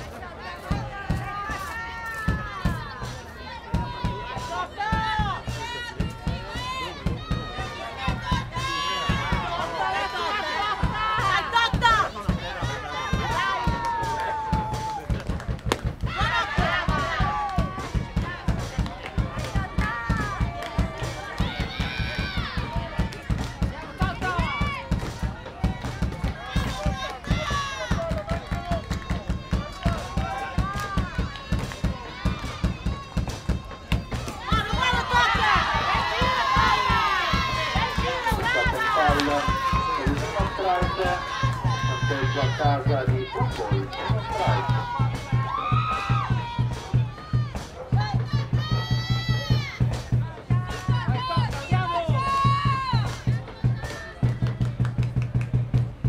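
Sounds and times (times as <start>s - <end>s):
group chanting and singing cheers: 0.0s - 54.9s
fast steady beat: 0.1s - 56.0s.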